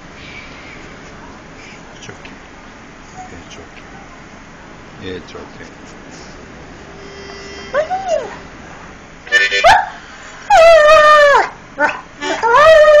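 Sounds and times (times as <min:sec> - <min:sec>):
dog howling: 0:07.7 - 0:08.5, 0:09.6 - 0:13.0
dog whining: 0:07.7 - 0:08.5, 0:09.4 - 0:13.0
dog yipping: 0:07.7 - 0:08.5, 0:09.5 - 0:13.0.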